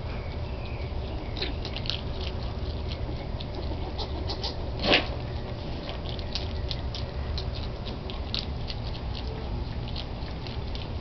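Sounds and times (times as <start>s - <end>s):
animals crunching dry kibble: 0.0s - 11.0s
steady low rumble: 0.0s - 11.0s.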